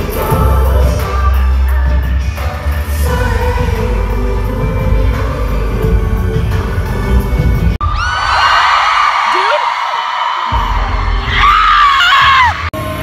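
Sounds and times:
loud amplified pop music: 0.0s - 13.0s
crowd screaming shrilly: 7.8s - 12.7s.

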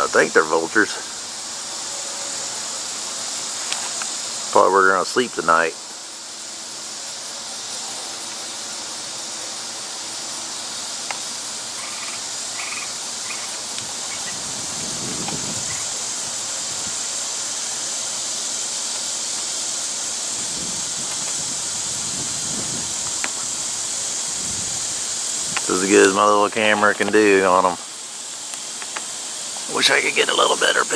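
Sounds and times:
insects droning: 0.0s - 30.9s.

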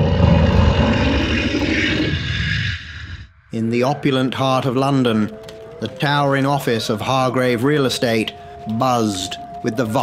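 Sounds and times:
beast growling: 0.0s - 3.3s.

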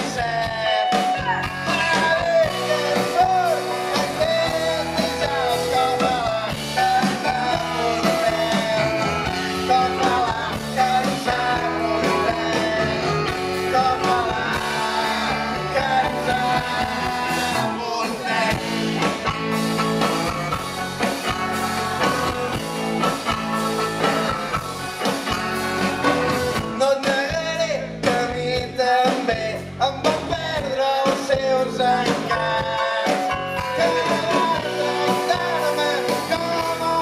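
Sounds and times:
live rock band playing: 0.0s - 37.0s
person singing lead vocal: 0.0s - 37.0s.

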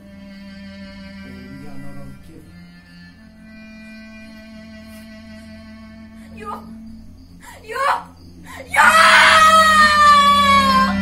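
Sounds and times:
long high-pitched cry: 7.5s - 11.0s.

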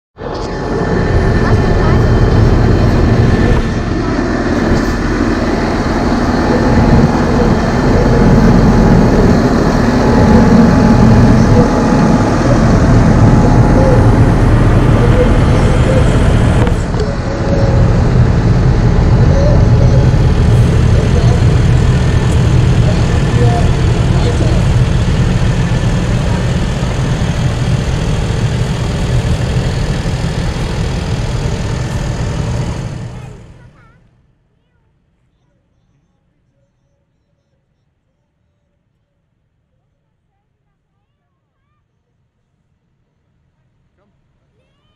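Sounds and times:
diesel tractor engines: 0.2s - 33.8s.

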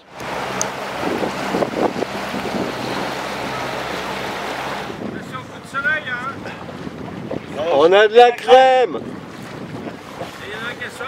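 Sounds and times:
motorboat engine humming: 0.0s - 11.0s
water rushing along hull: 0.0s - 11.0s
wind buffeting microphone: 0.1s - 11.0s.

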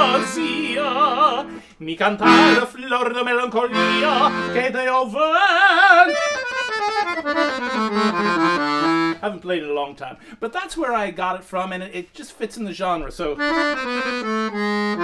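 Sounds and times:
piano accordion playing: 0.0s - 4.9s, 5.6s - 9.3s, 13.4s - 15.0s.

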